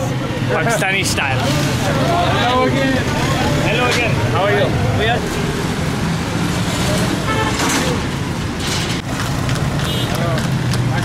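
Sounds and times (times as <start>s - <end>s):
people talking: 0.0s - 5.2s
low hum of motor traffic: 0.0s - 11.0s.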